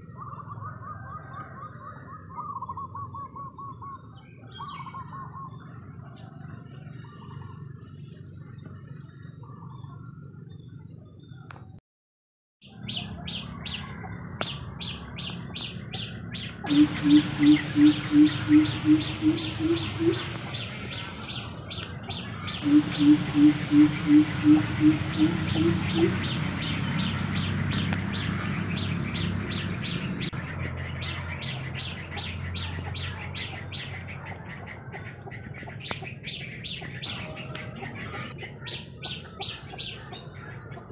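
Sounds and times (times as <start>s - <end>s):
bird chirping: 14.8s - 40.9s
bird calling high notes: 16.7s - 21.7s, 22.6s - 28.0s
low steady hum: 16.7s - 29.8s.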